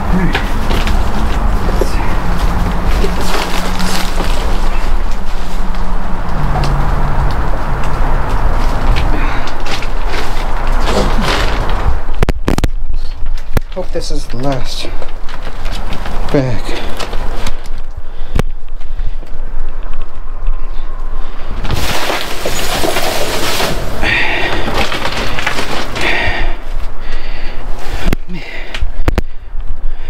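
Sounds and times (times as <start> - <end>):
plastic bags and packaging rustling: 0.0 - 20.2, 21.2 - 28.3.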